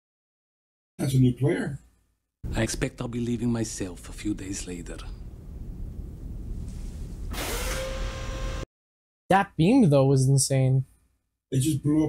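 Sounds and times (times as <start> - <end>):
low hum: 2.4 - 8.6.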